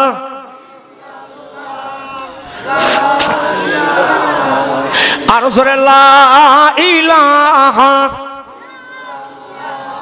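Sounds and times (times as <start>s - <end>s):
faint chanted voice: 0.0s - 5.0s, 8.3s - 10.0s
man's melodic religious chant: 0.0s - 10.0s.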